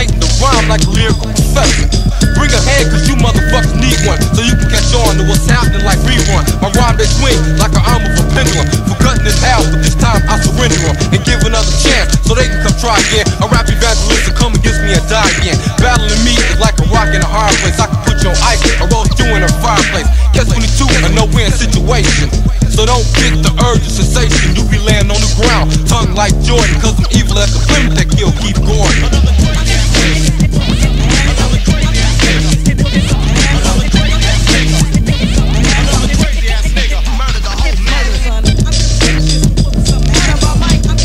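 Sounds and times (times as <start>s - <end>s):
rapping over a beat: 0.0s - 41.0s.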